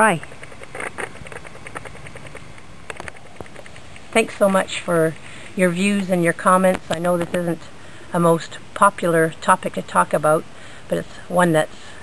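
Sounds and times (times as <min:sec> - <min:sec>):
small clicks: 0:00.2 - 0:05.6.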